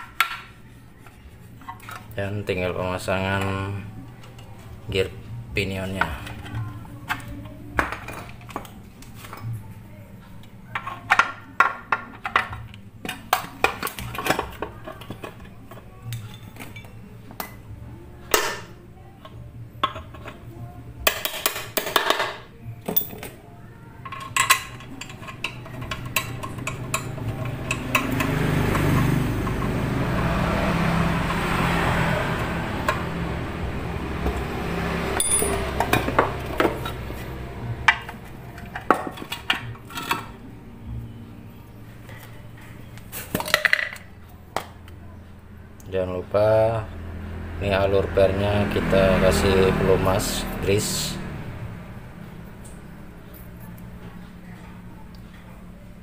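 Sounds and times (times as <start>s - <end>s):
metal parts clinking: 22.9s - 23.3s, 35.2s - 35.9s.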